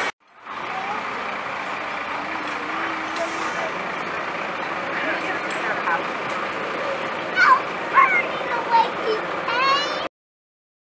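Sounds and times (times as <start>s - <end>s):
vehicles rolling slowly past: 0.0s - 10.1s.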